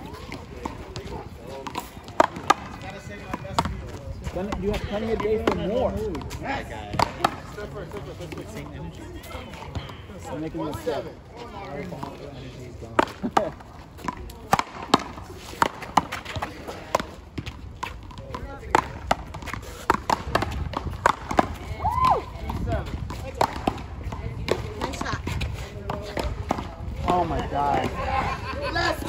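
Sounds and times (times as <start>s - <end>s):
paddles smacking ball: 13.0s - 23.9s.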